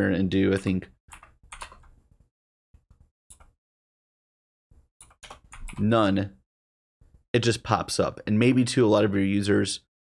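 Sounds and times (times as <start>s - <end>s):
computer keyboard typing: 1.1s - 2.0s, 3.3s - 3.6s, 5.0s - 5.9s.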